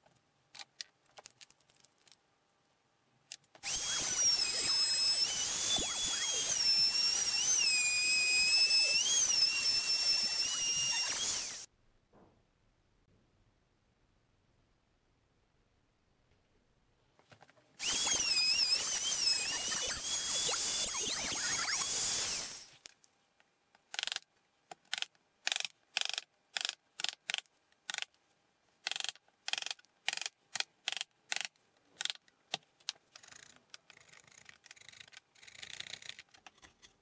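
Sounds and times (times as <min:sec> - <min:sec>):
electric router whining: 0:03.6 - 0:11.7, 0:17.8 - 0:22.7.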